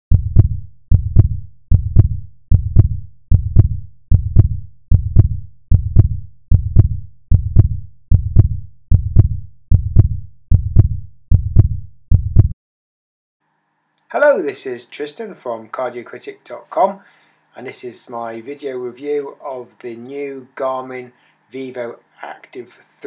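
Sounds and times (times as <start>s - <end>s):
heartbeat double thumps: 0.1s - 12.6s.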